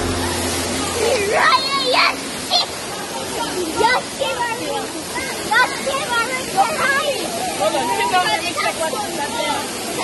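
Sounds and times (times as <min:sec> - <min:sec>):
waterfall rushing into pool: 0:00.0 - 0:10.0.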